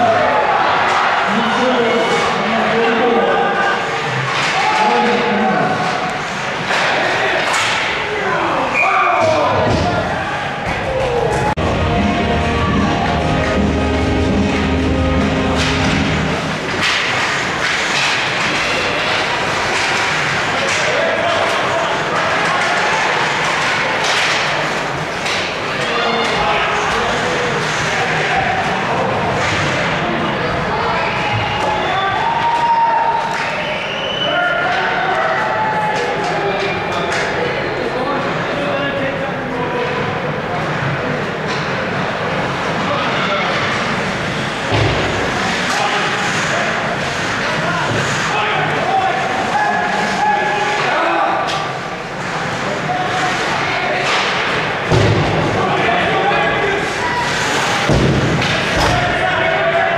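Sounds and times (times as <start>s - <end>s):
crowd voices and shouts: 0.0s - 59.9s
sticks and puck hitting boards: 13.7s - 26.4s, 57.3s - 59.6s.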